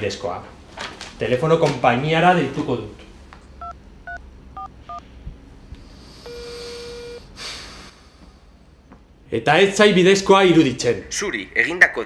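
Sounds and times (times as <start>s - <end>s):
steady ringback tone: 6.2s - 7.3s.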